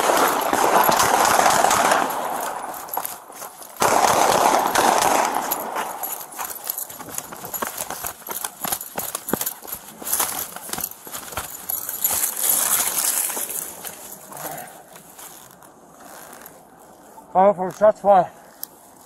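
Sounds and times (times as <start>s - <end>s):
footfalls: 0.0s - 17.0s.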